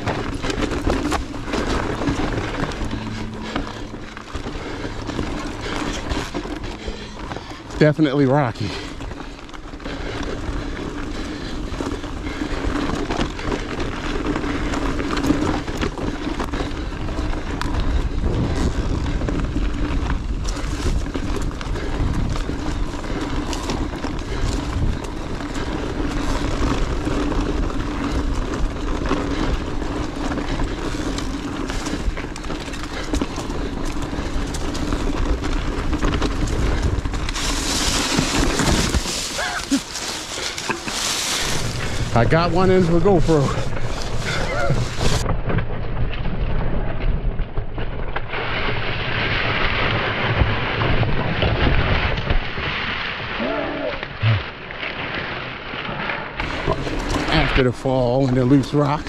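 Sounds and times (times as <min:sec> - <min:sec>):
skid through loose rocks: 0:00.0 - 0:45.6, 0:48.3 - 0:59.0
bike and camera rattling: 0:00.0 - 0:59.0
bike tyres rumbling over rock: 0:00.0 - 0:59.0.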